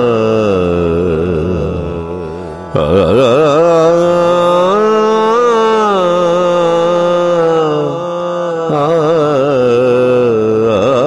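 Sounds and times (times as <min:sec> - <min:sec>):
man singing a wavering ah: 0:00.0 - 0:11.0.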